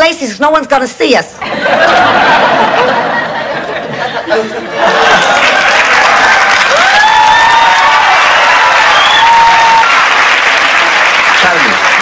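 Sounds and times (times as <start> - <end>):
audience applauding: 4.9 - 12.0.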